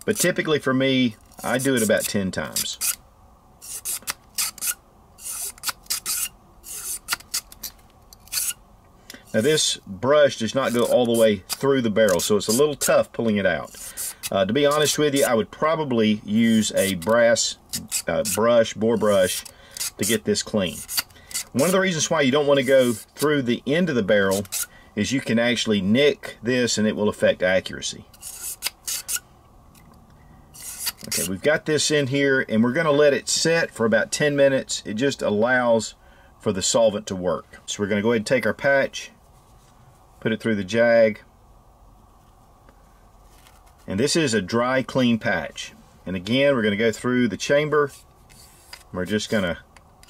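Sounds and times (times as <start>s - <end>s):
bore brush scraping inside barrel: 0.0s - 0.7s, 1.3s - 3.0s, 3.6s - 8.6s, 9.2s - 23.4s.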